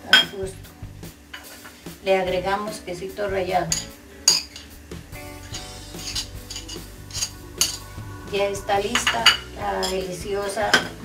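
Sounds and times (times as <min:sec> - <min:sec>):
metal spoon clinking on plates: 0:03.7 - 0:04.7.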